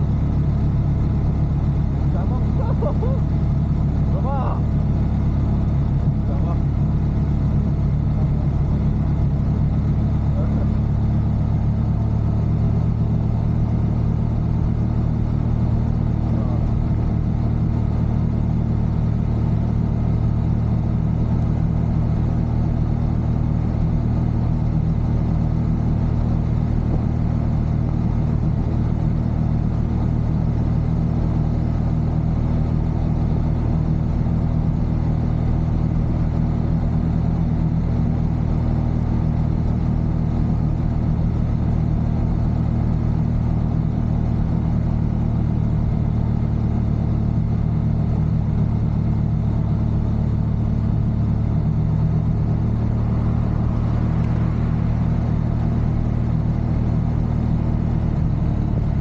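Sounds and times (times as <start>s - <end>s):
motorcycle engine cruising: 0.0s - 59.0s.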